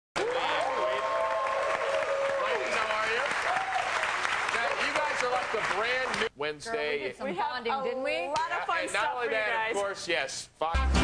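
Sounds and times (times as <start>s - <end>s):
audience applauding: 0.2s - 6.3s
people cheering: 0.2s - 6.3s.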